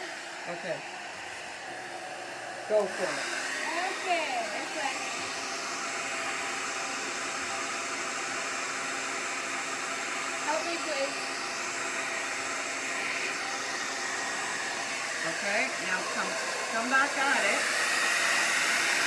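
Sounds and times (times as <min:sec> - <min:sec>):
hair dryer running: 0:00.0 - 0:19.0.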